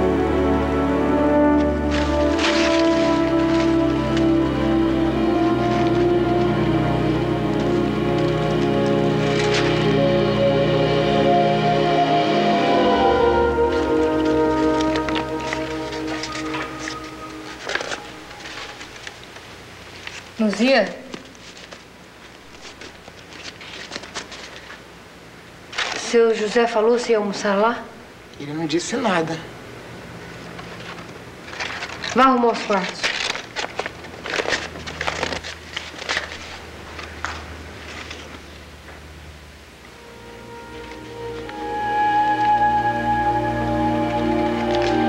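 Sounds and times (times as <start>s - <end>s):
low steady hum: 0.0s - 45.0s
paper rustling and crinkling: 1.4s - 9.9s, 13.7s - 24.9s, 25.7s - 26.5s, 30.4s - 39.0s.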